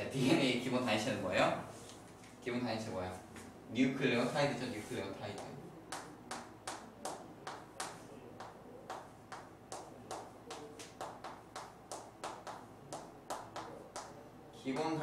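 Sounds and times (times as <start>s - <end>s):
sharp taps ringing in small room: 5.3s - 15.0s.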